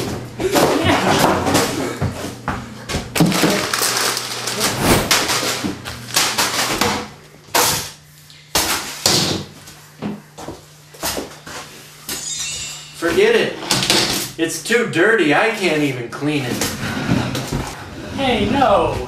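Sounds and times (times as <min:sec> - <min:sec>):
broom and mop scraping: 0:04.5 - 0:05.3.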